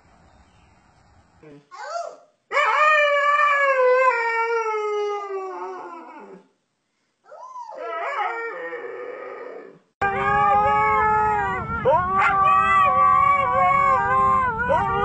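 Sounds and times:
husky howling: 0:07.7 - 0:15.0.

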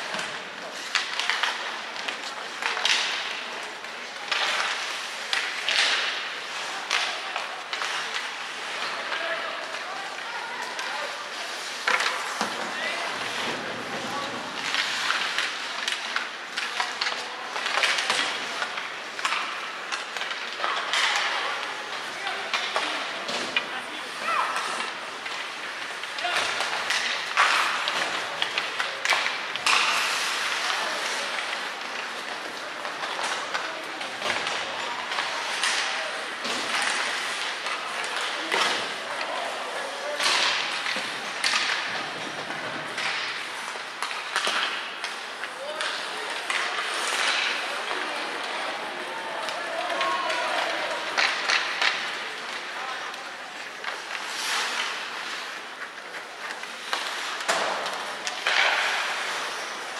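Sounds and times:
sticks and puck clacking on ice: 0:00.0 - 0:59.9.

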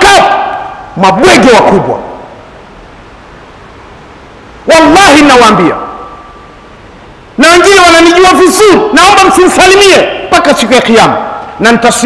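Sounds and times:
echo of man's voice: 0:00.0 - 0:02.3, 0:04.6 - 0:06.2, 0:07.4 - 0:12.0
room and microphone hiss: 0:00.0 - 0:12.0.

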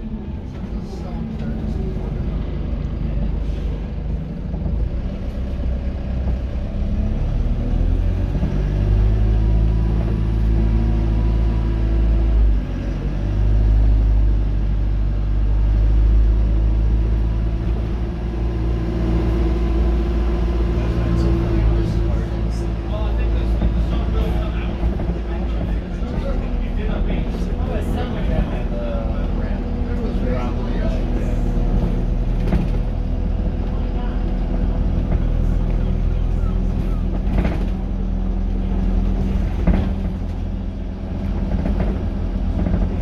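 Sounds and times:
bus engine droning: 0:00.0 - 0:43.0.

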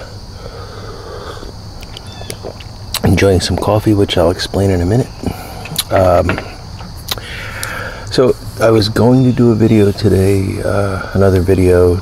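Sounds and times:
person sipping coffee: 0:00.6 - 0:03.1.

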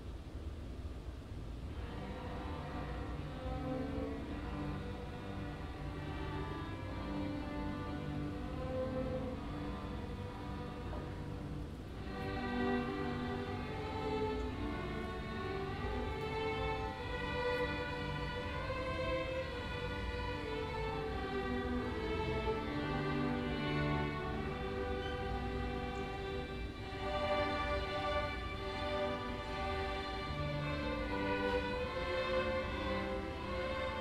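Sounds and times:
orchestral strings playing held notes: 0:01.7 - 0:34.0.

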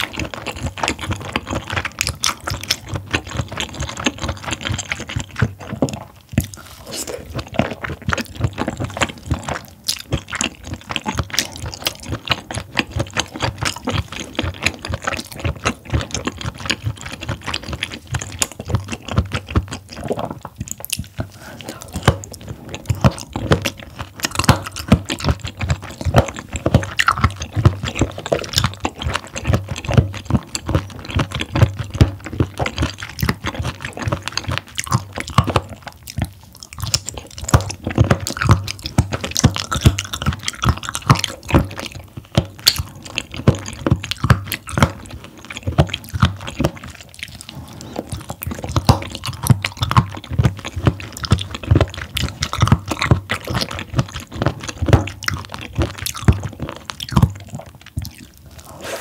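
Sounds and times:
wet crunchy chewing: 0:00.0 - 0:59.0.

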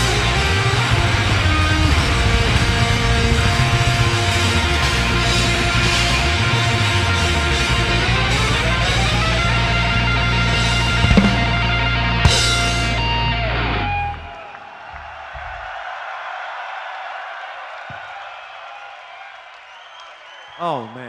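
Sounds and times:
live heavy metal band: 0:00.0 - 0:14.4
crowd cheering: 0:00.0 - 0:21.0
guitar note sliding down: 0:08.2 - 0:14.2.

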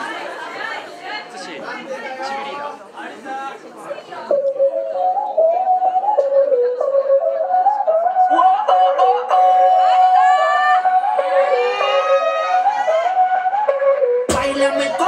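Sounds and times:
dance music over loudspeakers: 0:14.3 - 0:15.0.

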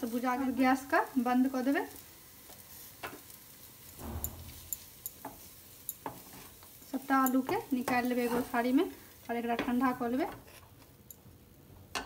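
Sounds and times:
wooden spatula scraping a steel pan: 0:04.0 - 0:06.7, 0:07.4 - 0:08.8.

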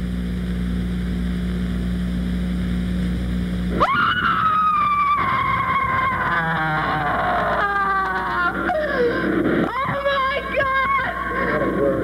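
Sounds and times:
woman screaming: 0:03.8 - 0:11.5.

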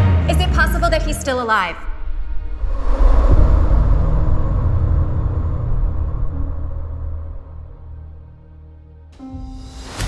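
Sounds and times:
deep cinematic rumble: 0:00.0 - 0:09.2.

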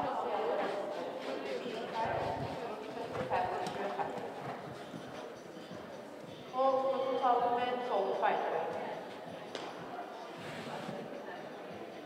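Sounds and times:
people talking: 0:00.0 - 0:05.9.

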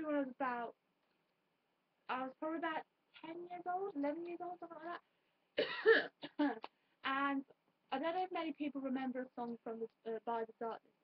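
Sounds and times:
woman coughing: 0:05.6 - 0:06.6.

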